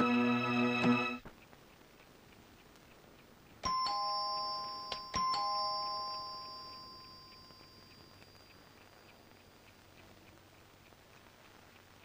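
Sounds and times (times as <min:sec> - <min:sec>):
doorbell ding-dong chime: 0:03.6 - 0:08.4.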